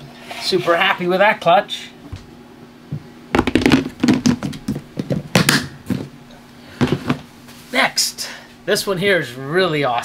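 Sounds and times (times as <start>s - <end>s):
plastic tubs clacking: 3.4s - 6.1s.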